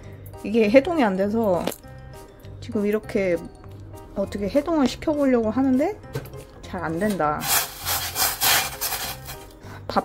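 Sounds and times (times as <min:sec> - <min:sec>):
saucepan scraping on burner grate: 0:07.0 - 0:09.6.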